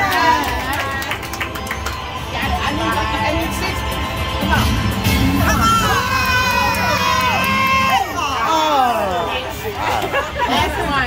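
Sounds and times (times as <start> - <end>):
women shouting and cheering: 5.4 - 9.6.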